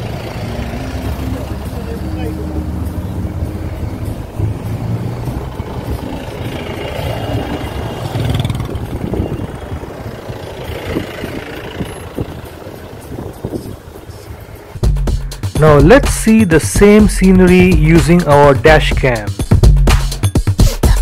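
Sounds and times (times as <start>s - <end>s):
idling car engines in traffic: 0.0s - 17.9s
road noise: 0.0s - 21.0s.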